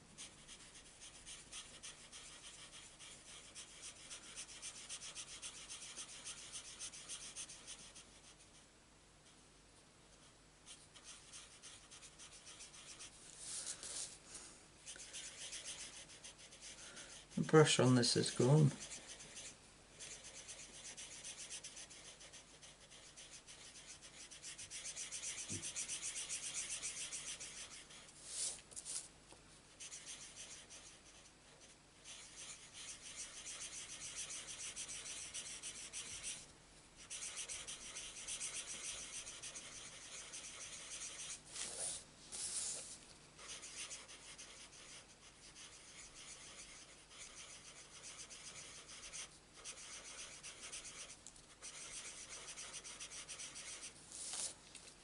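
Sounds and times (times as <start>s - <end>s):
marker scratching on card: 0.2s - 8.4s, 10.7s - 14.2s, 14.9s - 28.6s, 29.8s - 36.4s, 37.0s - 54.6s.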